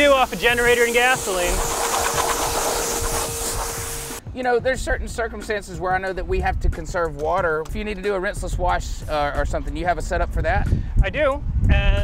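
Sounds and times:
pressure washer hum: 0.0 - 4.2
water spray hissing: 0.0 - 4.2.

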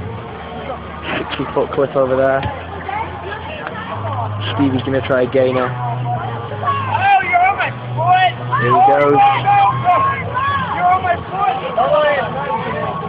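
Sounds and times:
crowd talking and calling out: 0.0 - 13.0.

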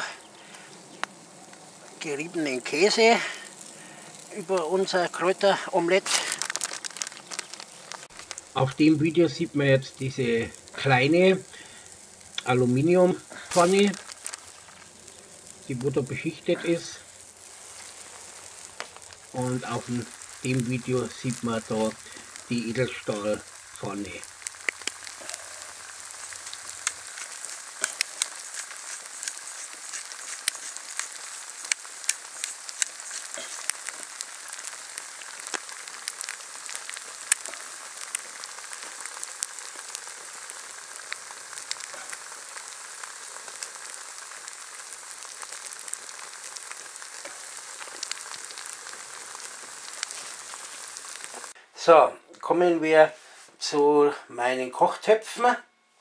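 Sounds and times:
food sizzling in a pan: 0.0 - 51.6
small pops and crackles: 0.0 - 51.6.

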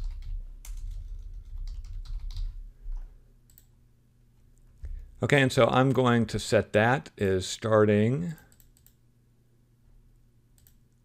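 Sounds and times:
typing on computer keyboard: 0.0 - 2.6.

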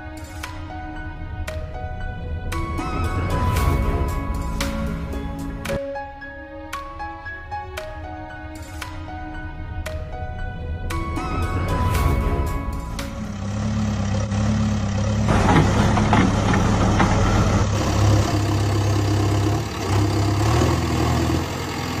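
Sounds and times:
diesel engine running: 11.0 - 22.0.

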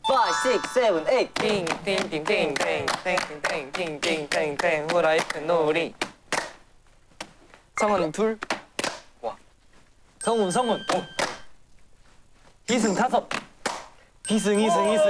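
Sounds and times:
bright ringing tone effect: 0.0 - 1.1
young men chanting and counting: 0.4 - 6.0.

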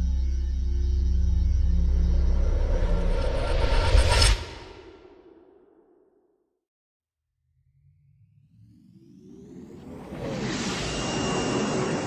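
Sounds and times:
low droning music: 0.0 - 5.4.

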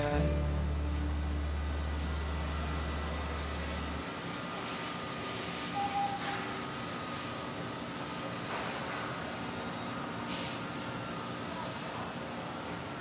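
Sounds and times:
low steady hum: 0.0 - 4.0.

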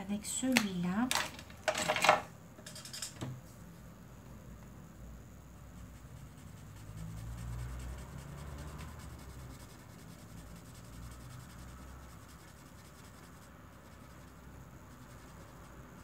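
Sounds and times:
marker rubbing on paper: 5.7 - 16.0.

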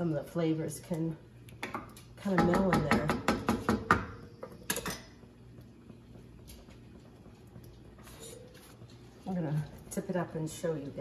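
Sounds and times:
wooden spoon tapping pot: 1.6 - 5.0.

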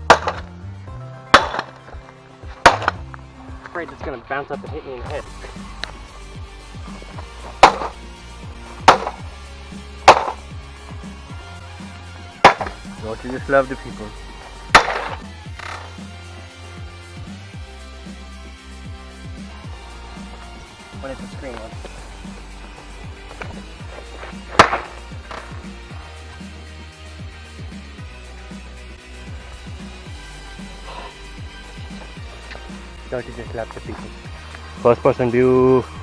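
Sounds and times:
background music: 0.0 - 36.0
hammer cracking screen panel: 0.1 - 0.5, 1.4 - 1.8, 10.1 - 10.4, 14.8 - 15.7.

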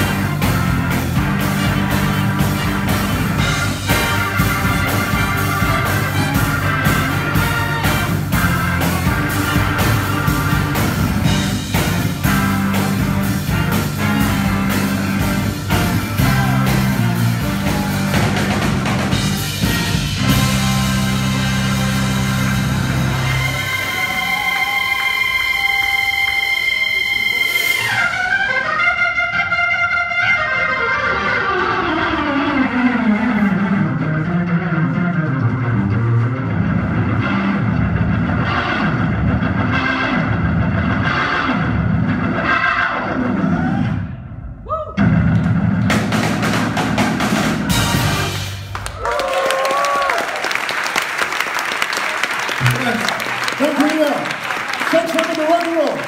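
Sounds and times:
audience applause and cheering: 0.0 - 28.4, 47.7 - 56.0
organ rock band with drums: 0.0 - 29.0, 34.1 - 44.0, 45.0 - 48.9.

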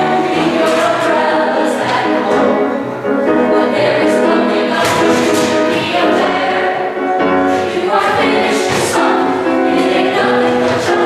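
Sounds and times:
mixed choir singing in harmony: 0.0 - 11.0.

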